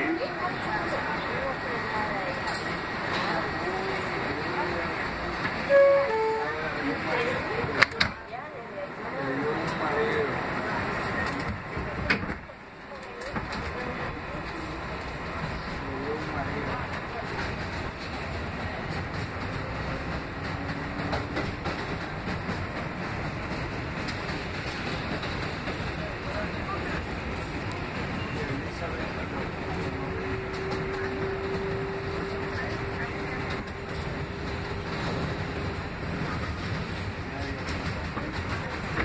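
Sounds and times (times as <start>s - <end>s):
rumble of wheels on rail: 0.0s - 39.0s.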